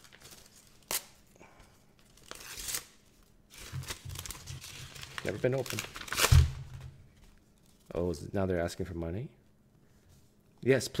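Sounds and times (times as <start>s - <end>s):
paper envelope tearing: 0.0s - 1.2s, 2.0s - 6.6s.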